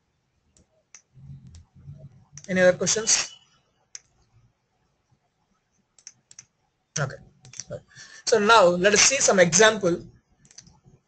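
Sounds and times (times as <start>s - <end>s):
faint low hum: 0.0s - 8.1s.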